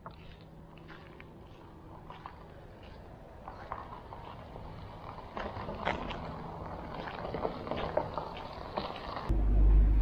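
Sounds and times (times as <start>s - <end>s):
footsteps crunching on gravel: 0.0s - 9.3s
low background rumble: 0.0s - 10.0s.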